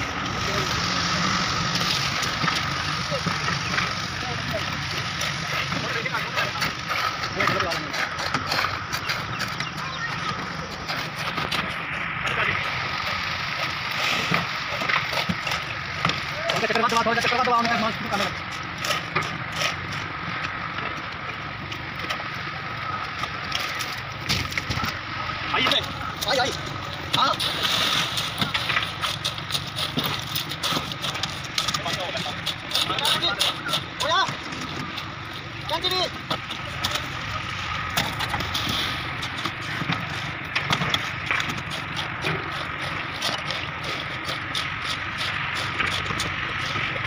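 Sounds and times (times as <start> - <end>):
shovels working wet concrete: 0.0 - 20.3, 23.2 - 47.0
engine running: 0.0 - 47.0
workers talking: 0.0 - 47.0
steady low hum: 17.8 - 47.0.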